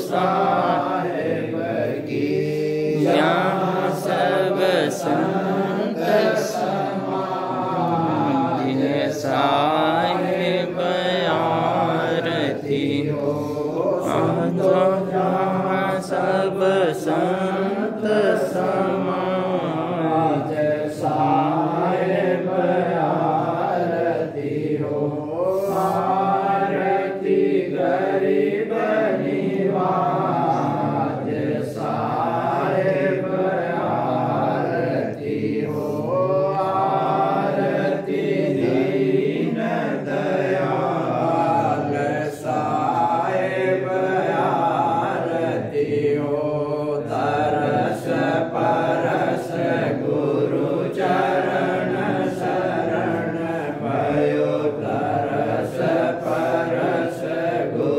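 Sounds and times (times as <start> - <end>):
voices chanting a hymn: 0.0 - 57.9.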